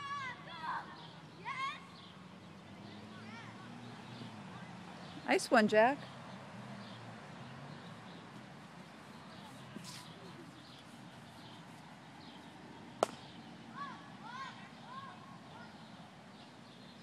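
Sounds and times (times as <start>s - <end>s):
faint outdoor background: 0.0s - 17.0s.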